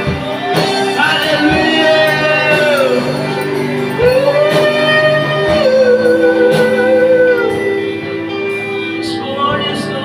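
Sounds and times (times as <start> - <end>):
worship band music: 0.0 - 10.0.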